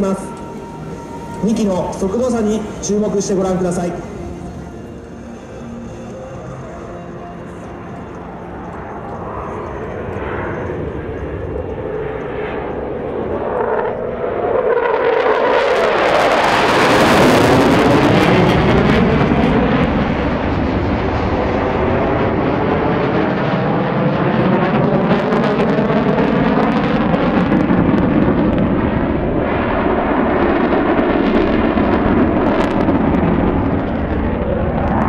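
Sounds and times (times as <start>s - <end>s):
jet engines passing low: 0.0s - 35.0s.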